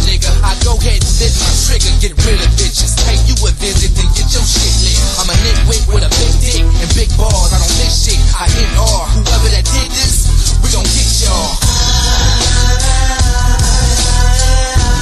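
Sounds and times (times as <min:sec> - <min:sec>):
rapping over a beat: 0:00.0 - 0:15.0.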